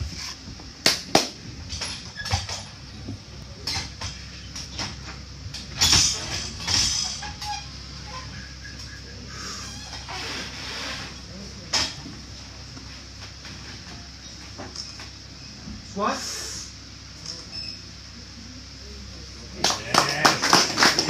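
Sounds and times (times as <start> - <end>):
sharp claps or slaps: 0.8 - 1.4, 19.6 - 21.0.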